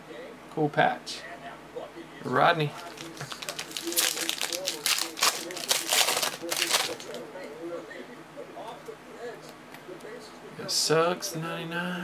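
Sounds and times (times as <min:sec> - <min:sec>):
foil wrapper crinkling and tearing: 0:02.7 - 0:07.2.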